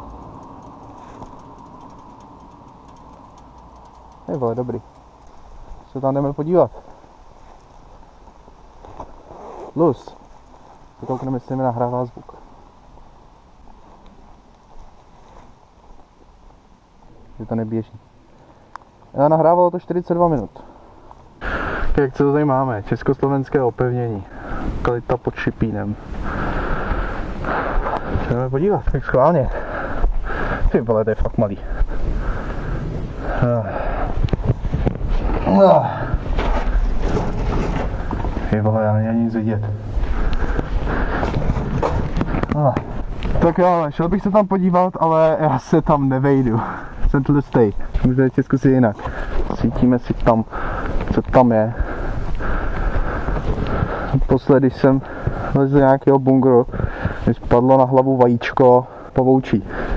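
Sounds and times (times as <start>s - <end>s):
wind buffeting microphone: 25.6s - 44.4s, 45.7s - 55.6s, 56.6s - 57.5s.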